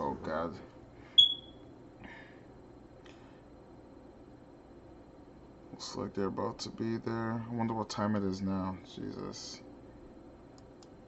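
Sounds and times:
short high-pitched ping: 0:01.2 - 0:01.5.

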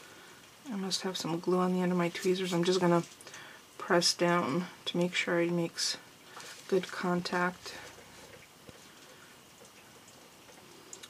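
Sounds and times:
faint dripping water: 0:00.0 - 0:11.0.

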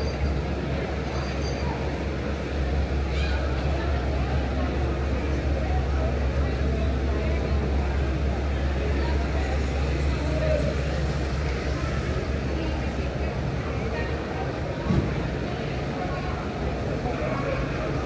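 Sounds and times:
idling taxis humming: 0:00.0 - 0:18.0
street chatter: 0:00.0 - 0:18.0.

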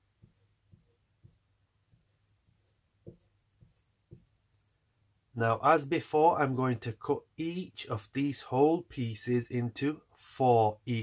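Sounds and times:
marker strokes on whiteboard: 0:00.0 - 0:04.4.

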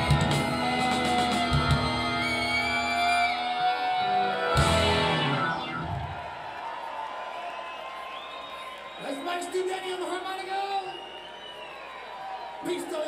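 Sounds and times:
live rock band with electric guitars: 0:00.0 - 0:06.4.

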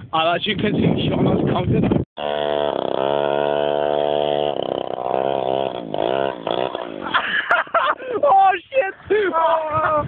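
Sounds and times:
small two-stroke engine revving: 0:02.2 - 0:07.2.

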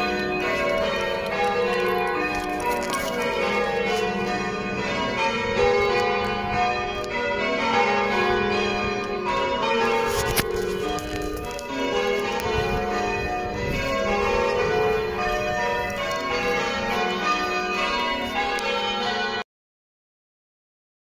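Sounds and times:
church bells pealing: 0:00.0 - 0:19.4.

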